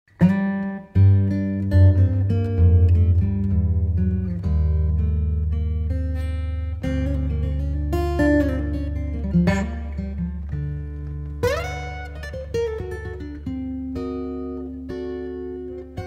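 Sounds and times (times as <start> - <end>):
plucked guitar notes: 0.1 - 16.0.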